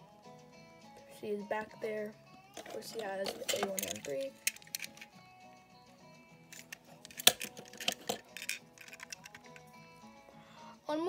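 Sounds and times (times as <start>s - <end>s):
quiet background music: 0.0s - 11.0s
toy trucks clicking together: 2.6s - 5.1s, 6.5s - 9.7s.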